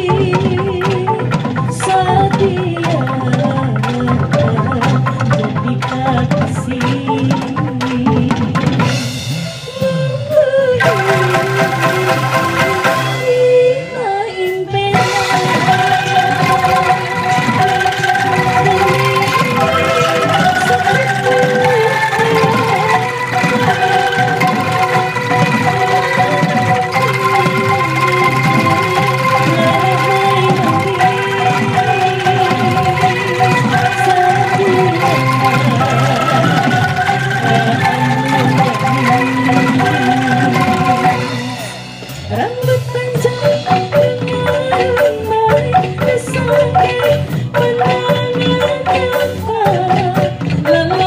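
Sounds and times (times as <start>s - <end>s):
woman singing into a microphone: 0.0s - 8.8s, 9.6s - 17.7s, 18.3s - 25.0s, 27.8s - 41.2s, 42.3s - 51.0s
angklung ensemble with band: 0.0s - 51.0s.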